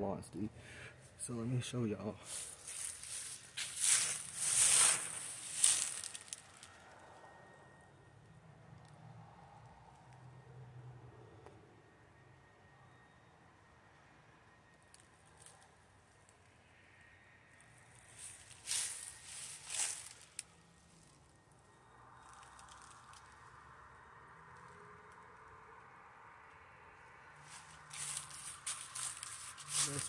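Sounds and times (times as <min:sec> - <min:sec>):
faint outdoor ambience: 0:00.0 - 0:30.0.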